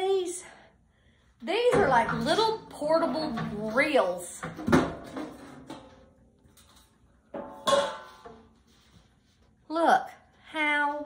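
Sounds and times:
metal lid clinking: 7.4 - 8.4.

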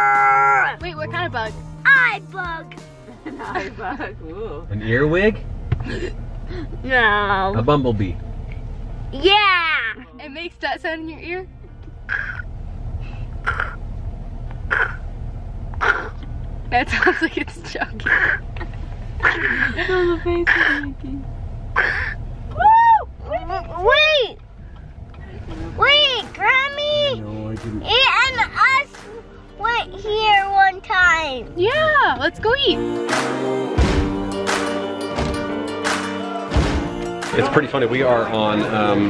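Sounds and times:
car cabin rumble: 0.0 - 32.8, 33.8 - 39.0
boy imitating bee buzzing: 13.4 - 13.8, 14.7 - 15.0, 15.8 - 16.2.

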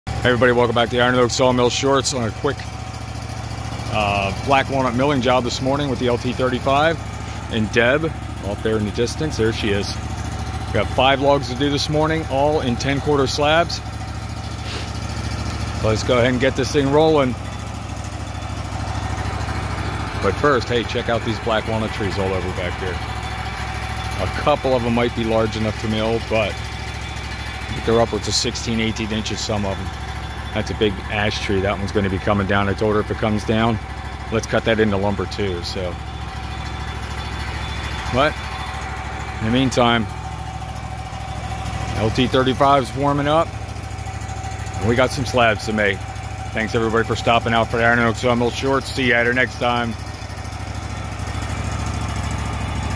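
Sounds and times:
sawmill engine idling: 0.1 - 52.9.

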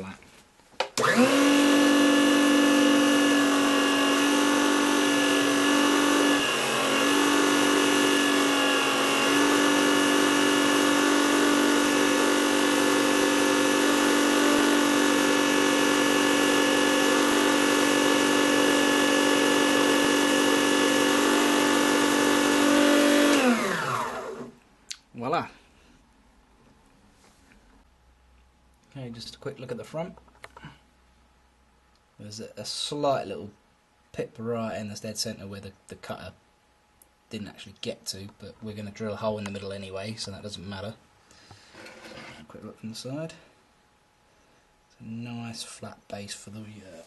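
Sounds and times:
lathe motor whining: 1.0 - 24.6
motor winding down: 1.0 - 24.6.

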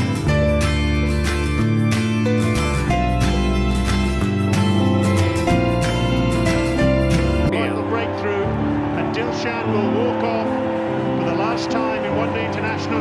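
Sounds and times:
music with deep bass: 0.0 - 13.0
crowd cheering: 4.6 - 13.0.

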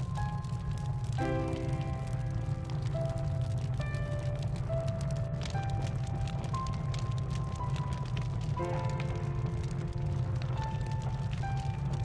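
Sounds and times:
faint crackling: 0.0 - 12.0
low rumble: 0.0 - 12.0
slow film music melody: 0.0 - 12.0.

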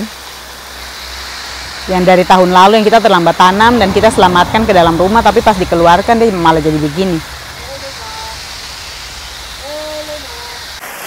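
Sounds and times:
hose spray nozzle hissing: 0.0 - 3.0, 7.1 - 11.0
car approaching: 3.3 - 10.8.

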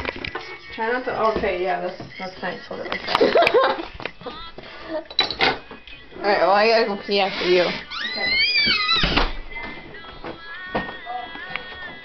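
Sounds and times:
faint voices: 0.4 - 12.0.

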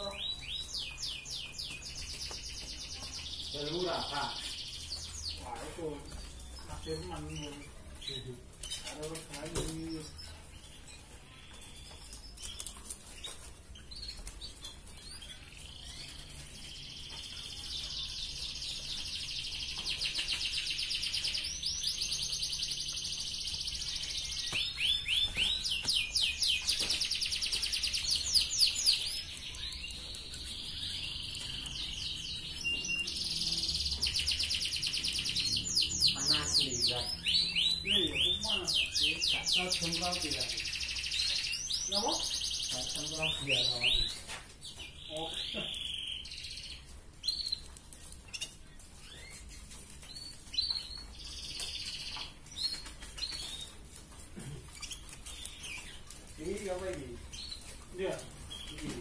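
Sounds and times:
canary singing trills: 0.0 - 59.0.

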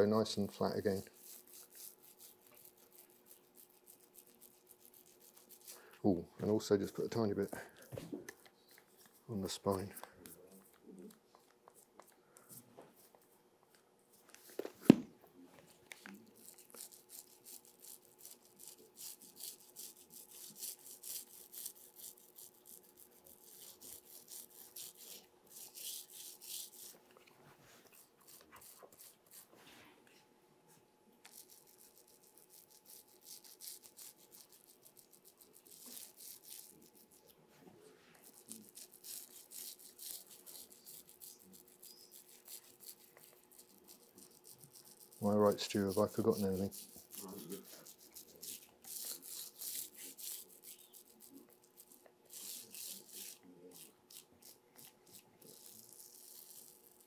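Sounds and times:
bristle brush scrubbing: 0.0 - 10.8, 16.2 - 27.0, 27.6 - 29.9, 31.2 - 37.4, 38.0 - 57.0.

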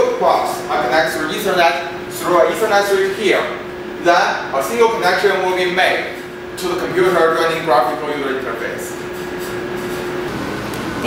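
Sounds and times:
fan and ventilation noise: 0.0 - 11.0.

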